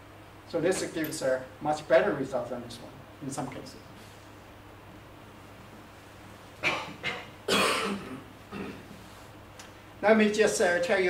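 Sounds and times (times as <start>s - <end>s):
man coughing: 6.6s - 8.9s.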